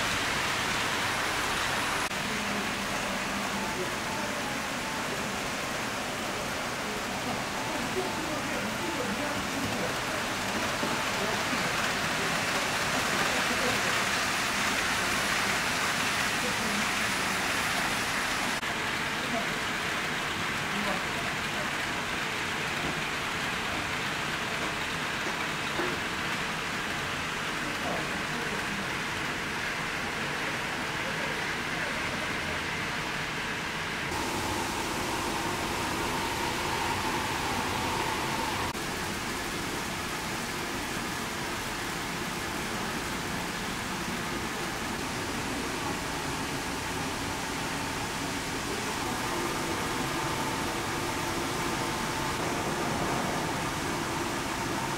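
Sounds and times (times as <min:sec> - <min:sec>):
model train wheels on rail: 0:00.0 - 0:54.9
faint motor hum: 0:34.1 - 0:40.5.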